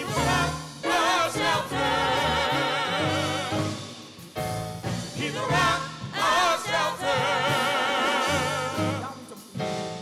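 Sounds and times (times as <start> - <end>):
worship team singing: 0.0 - 4.1, 5.1 - 9.4.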